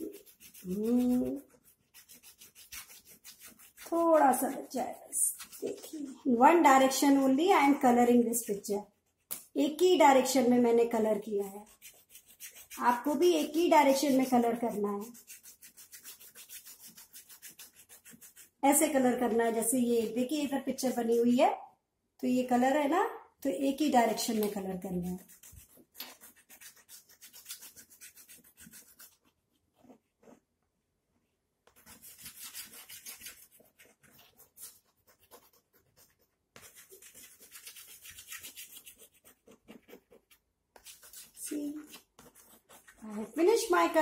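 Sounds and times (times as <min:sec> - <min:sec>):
chalk scratching on blackboard: 0:00.0 - 0:21.4, 0:24.0 - 0:30.4, 0:31.6 - 0:44.0.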